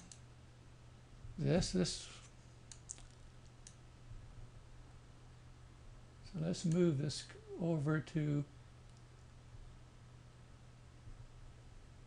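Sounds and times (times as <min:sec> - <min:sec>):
low steady hum: 0:00.0 - 0:12.0
computer mouse click: 0:02.7 - 0:03.8.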